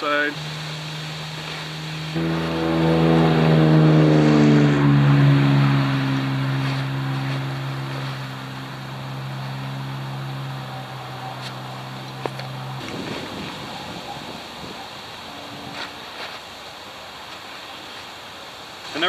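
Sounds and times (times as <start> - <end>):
vehicle engine droning past: 0.0 - 16.2.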